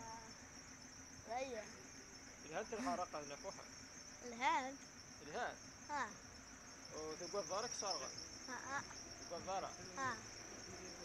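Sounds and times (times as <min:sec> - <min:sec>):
steady high-pitched hiss: 0:00.0 - 0:11.0.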